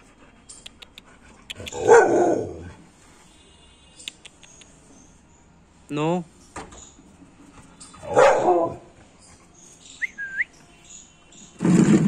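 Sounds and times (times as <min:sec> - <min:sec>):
dog barking: 0:01.7 - 0:02.6, 0:08.0 - 0:08.9.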